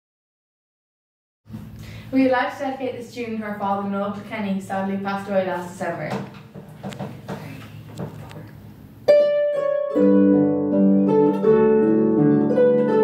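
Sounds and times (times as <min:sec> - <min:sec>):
harps playing: 0:09.0 - 0:13.0.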